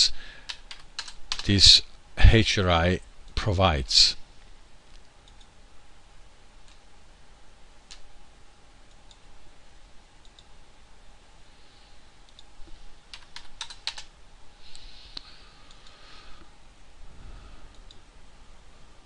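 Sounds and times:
faint room hiss: 0.0 - 19.0.

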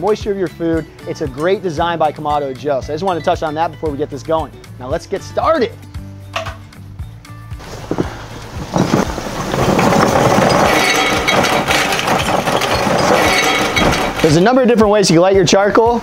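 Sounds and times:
background music: 0.0 - 16.0
charcoal clattering into a firebox: 6.3 - 6.8, 7.6 - 14.6.

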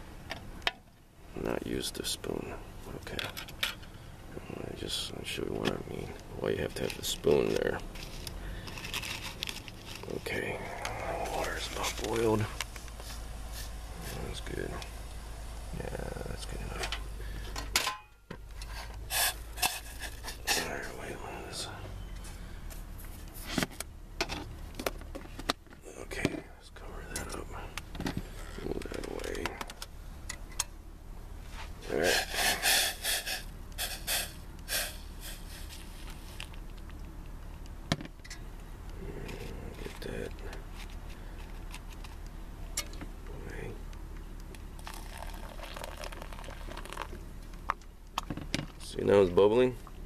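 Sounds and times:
hot water pouring into filter: 44.8 - 47.1.

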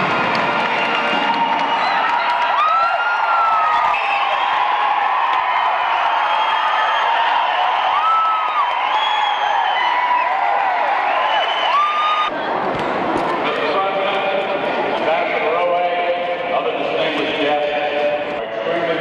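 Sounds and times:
indoor crowd cheering: 0.0 - 17.8
shouts and whoops: 0.8 - 12.3.

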